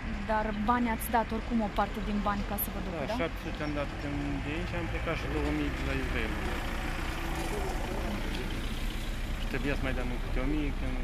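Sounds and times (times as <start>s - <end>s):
engine idling: 3.1s - 11.0s.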